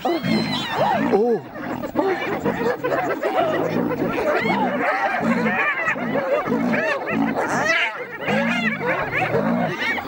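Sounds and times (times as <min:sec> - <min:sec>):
hyenas giggling and yelping: 0:00.0 - 0:10.0.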